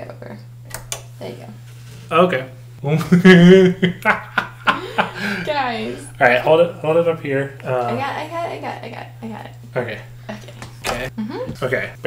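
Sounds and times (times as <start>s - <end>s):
person laughing: 2.9s - 6.1s.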